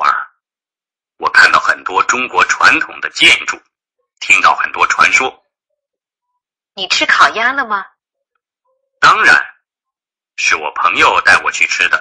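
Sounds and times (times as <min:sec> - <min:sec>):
person speaking: 0:04.2 - 0:05.4, 0:09.0 - 0:09.6.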